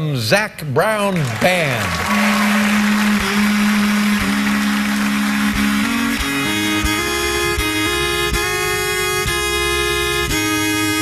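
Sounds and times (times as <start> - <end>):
fiddle bowing held notes: 2.1 - 11.0
guitar: 3.1 - 11.0.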